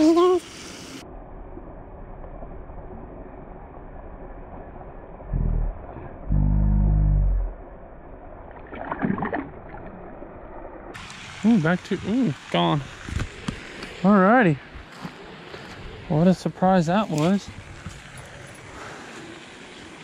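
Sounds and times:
muffled water splashing: 0:00.0 - 0:20.0.

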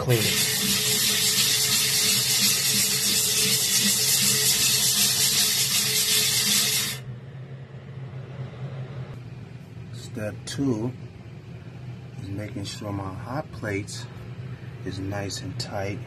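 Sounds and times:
metal screen scraping metal surface: 0:00.0 - 0:07.0
low steady hum: 0:00.0 - 0:16.0.

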